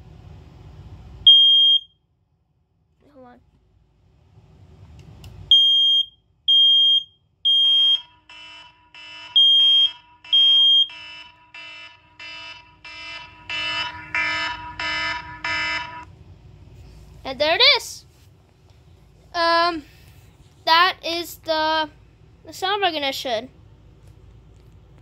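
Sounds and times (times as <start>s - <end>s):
smoke alarm beeping: 1.2s - 2.0s, 5.5s - 16.0s
phone alarm pulsing chime: 6.8s - 16.0s.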